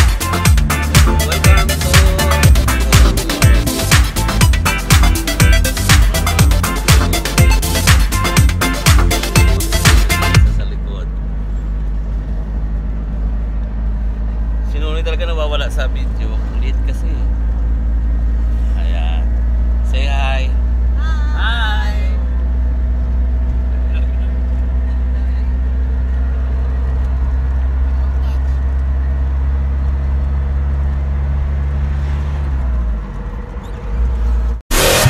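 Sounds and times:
van engine and road noise: 0.0 - 35.0
voices: 0.7 - 6.4, 18.8 - 22.4.

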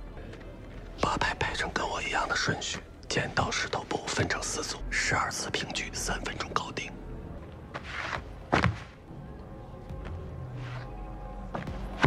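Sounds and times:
people speaking dialogue: 1.0 - 6.9.

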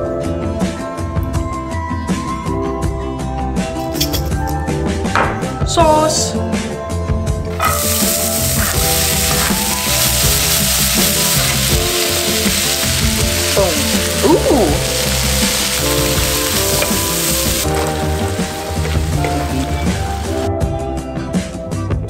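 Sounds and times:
background music: 0.0 - 22.0
onions sizzling in oil: 7.6 - 20.5.

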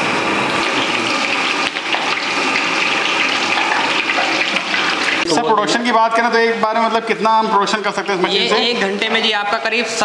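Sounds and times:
dough frying in hot oil: 0.0 - 5.3.

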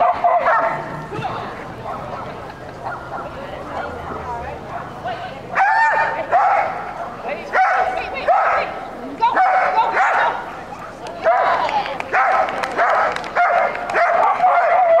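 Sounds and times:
dog barking: 0.0 - 0.9, 5.6 - 6.8, 7.5 - 8.7, 9.4 - 10.4, 11.2 - 15.0.

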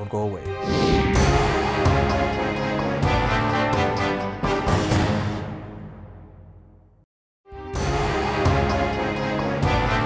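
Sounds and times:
television ident theme music: 0.0 - 6.7, 7.5 - 10.0.

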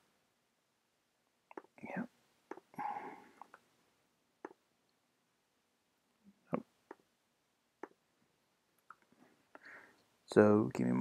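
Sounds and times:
person whispering: 1.8 - 2.1.

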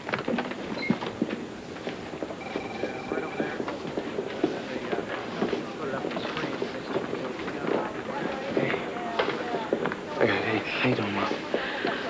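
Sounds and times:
footsteps: 0.0 - 12.0
office chatter: 2.4 - 12.0.

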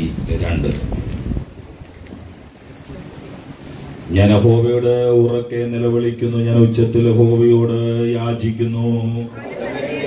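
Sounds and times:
low rumbling room noise: 0.0 - 10.0.

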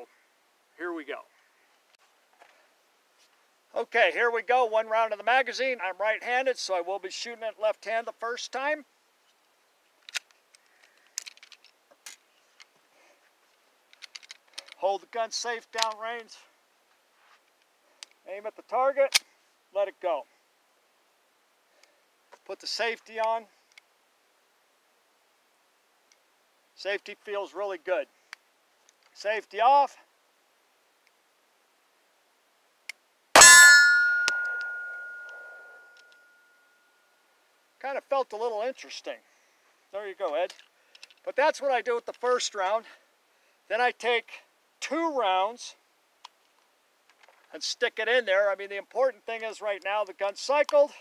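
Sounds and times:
metallic ringing: 33.4 - 37.2.

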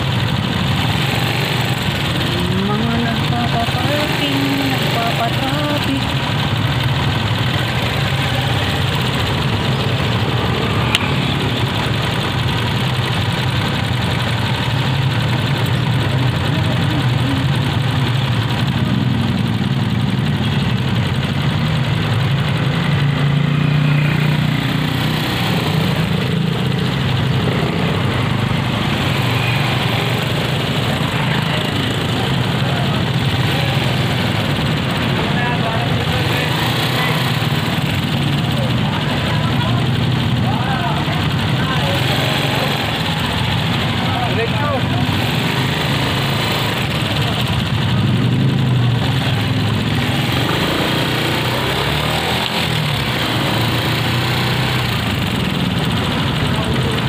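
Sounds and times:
motorcycle engine idling: 0.0 - 57.0.

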